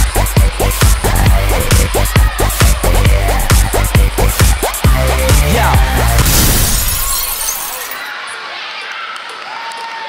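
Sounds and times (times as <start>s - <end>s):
dance music beat: 0.0s - 6.3s
glass shattering crash: 6.2s - 8.1s.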